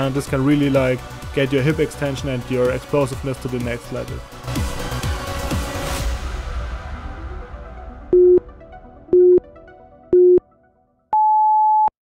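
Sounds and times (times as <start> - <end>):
background music: 0.0 - 11.1
long high beep: 8.2 - 8.4, 9.2 - 9.4, 10.2 - 10.4, 11.2 - 11.9
short low beeps: 8.2 - 8.4, 9.2 - 9.4, 10.2 - 10.4, 11.1 - 11.9.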